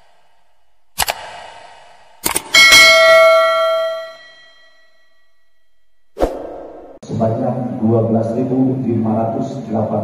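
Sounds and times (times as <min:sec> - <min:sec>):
ringing bell strike: 0:02.5 - 0:06.1.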